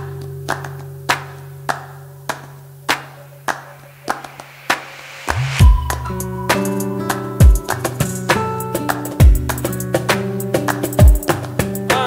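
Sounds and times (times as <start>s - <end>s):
rhythmic handclaps: 0.0s - 12.0s
low held note: 4.8s - 7.9s.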